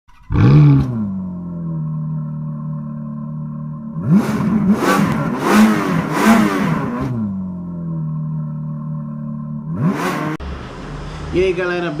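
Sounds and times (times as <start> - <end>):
engine revving: 0.0 - 11.6.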